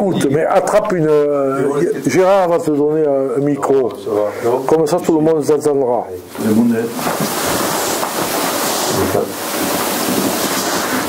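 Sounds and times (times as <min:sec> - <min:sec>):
handheld microphone rustling: 0:06.2 - 0:11.0.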